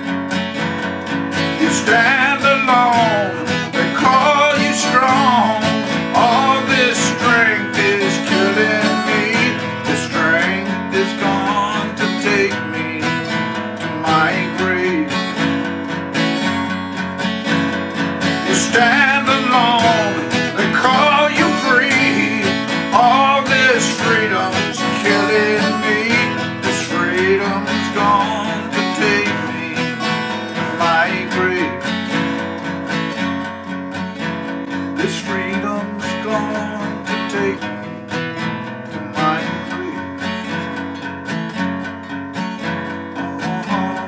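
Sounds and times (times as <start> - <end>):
acoustic guitar strummed and picked: 0.0 - 44.0.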